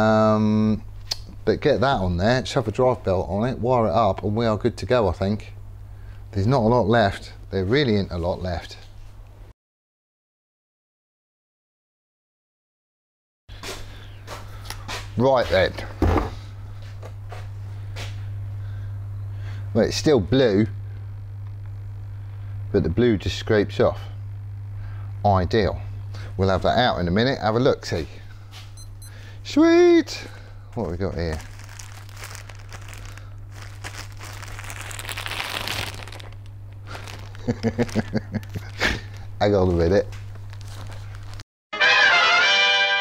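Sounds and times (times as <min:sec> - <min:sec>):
low electrical hum: 0:00.0 - 0:09.5, 0:13.5 - 0:41.4
plastic and paper crinkling: 0:30.8 - 0:41.4
person laughing: 0:36.9 - 0:39.4.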